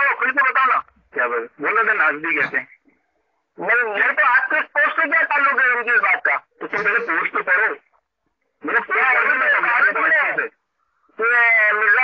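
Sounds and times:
person talking over phone: 0.0 - 3.0, 3.6 - 8.0, 8.6 - 12.0.

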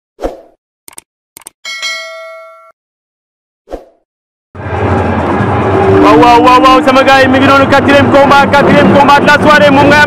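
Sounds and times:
bell chime ringing: 1.7 - 2.8.

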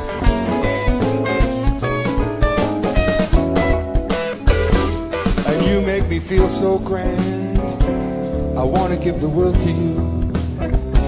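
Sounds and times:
drum kit with cymbals: 0.0 - 11.0
electric guitars: 0.0 - 11.0
keyboard: 0.0 - 11.0
upright bass: 0.0 - 11.0.

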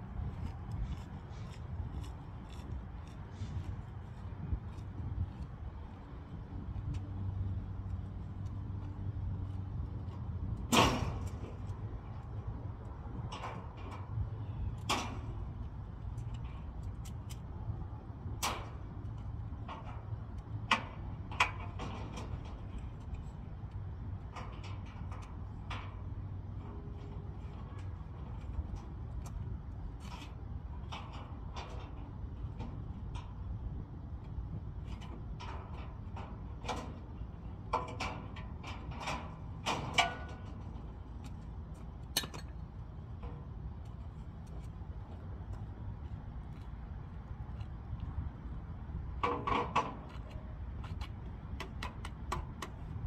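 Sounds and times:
steady low rumble: 0.0 - 53.0
metallic clanks on steel trailer: 10.5 - 12.3, 18.3 - 44.2, 49.0 - 51.0.

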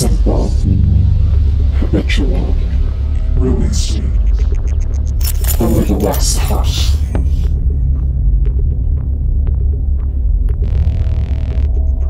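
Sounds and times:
deep bass electronic music: 0.0 - 12.0
faint percussive ticks: 4.2 - 6.8.

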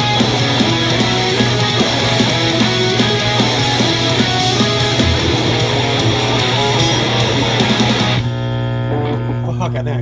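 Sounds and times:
recorded song with drums: 0.0 - 8.3
electric guitar playing punk: 0.0 - 9.5.

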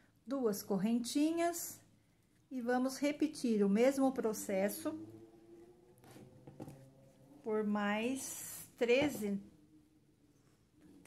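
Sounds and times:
low hum: 3.4 - 11.0.

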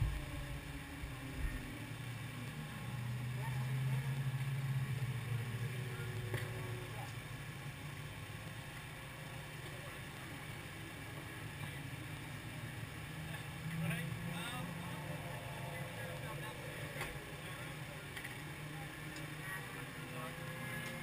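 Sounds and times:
faint indistinct voices: 0.0 - 21.0
low engine hum: 0.0 - 21.0.

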